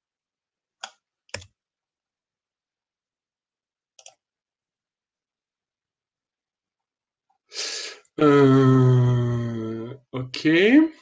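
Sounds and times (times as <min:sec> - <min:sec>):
computer mouse clicks: 0:00.8 - 0:01.6, 0:04.0 - 0:04.2.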